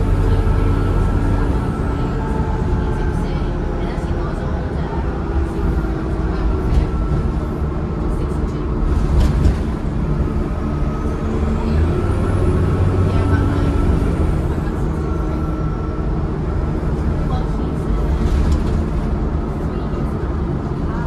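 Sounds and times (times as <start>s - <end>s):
bus engine low rumble: 0.0s - 21.0s.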